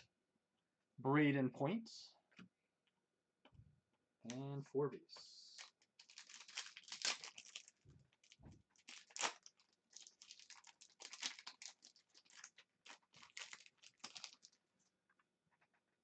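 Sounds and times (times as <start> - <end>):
foil wrapper crinkling and tearing: 5.6 - 14.6.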